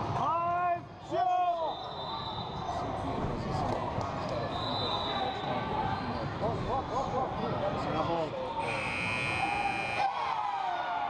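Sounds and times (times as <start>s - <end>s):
voices echoing in gym: 0.0s - 11.0s
scoreboard buzzer: 8.6s - 10.0s.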